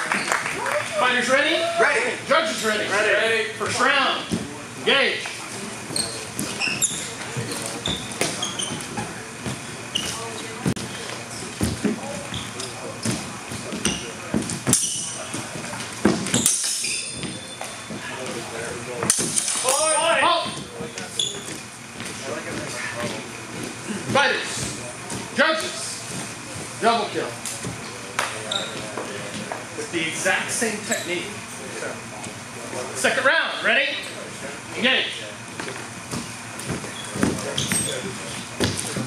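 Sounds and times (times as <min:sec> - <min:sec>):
swords clashing with metallic ring: 0:16.4 - 0:17.4.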